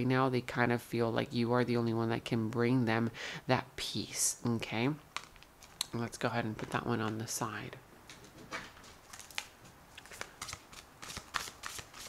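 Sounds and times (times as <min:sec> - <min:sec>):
cards being shuffled: 0:08.1 - 0:12.0.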